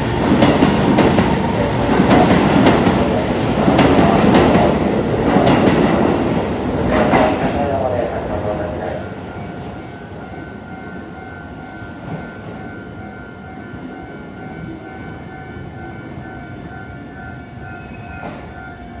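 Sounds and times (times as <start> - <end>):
electric train rumble: 0.0 - 19.0.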